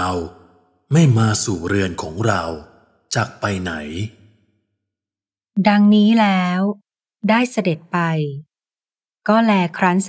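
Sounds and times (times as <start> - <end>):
person speaking: 0.9 - 4.2.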